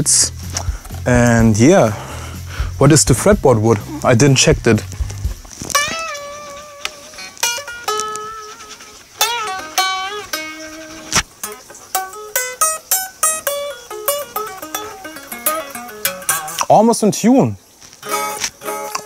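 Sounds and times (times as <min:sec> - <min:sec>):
unplugged electric guitar notes: 0:03.2 - 0:16.7.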